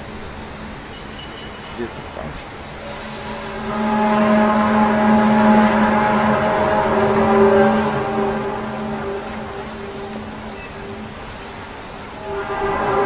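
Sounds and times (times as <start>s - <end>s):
low horn-like drone: 2.8s - 11.4s, 12.1s - 13.0s.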